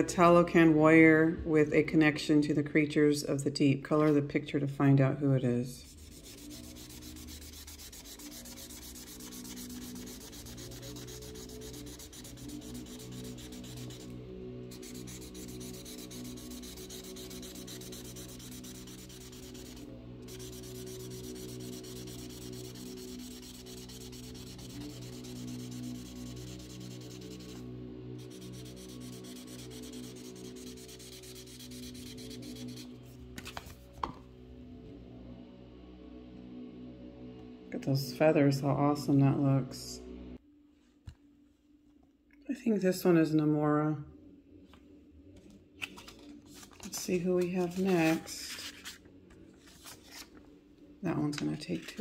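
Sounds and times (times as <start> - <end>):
marker scribbling on paper: 5.9 - 14.1, 14.7 - 27.6.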